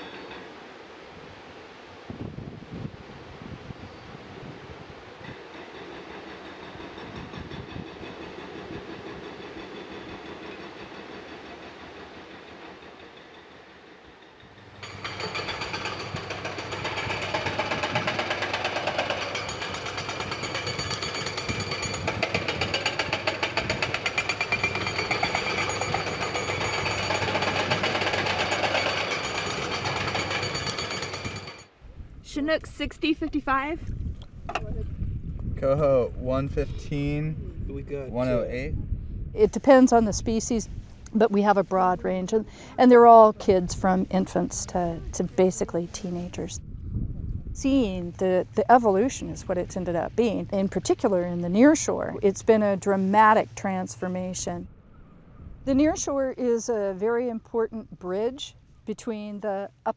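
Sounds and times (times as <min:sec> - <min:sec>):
demolition machinery hammering: 0:14.6 - 0:31.7.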